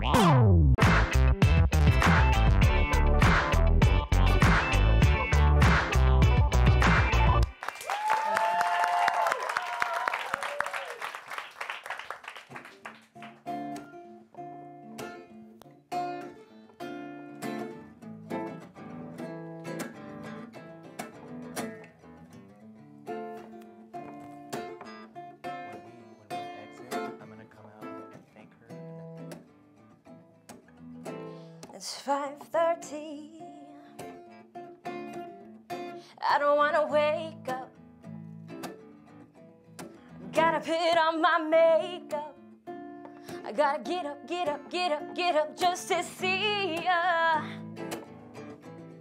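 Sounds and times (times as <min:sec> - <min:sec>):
audience cheering and clapping: 0:06.8 - 0:13.3
solo acoustic guitar: 0:12.8 - 0:49.0.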